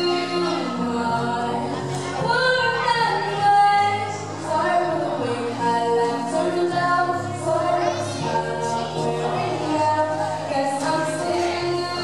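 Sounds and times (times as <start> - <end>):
woman singing into microphone: 0.0 - 12.0.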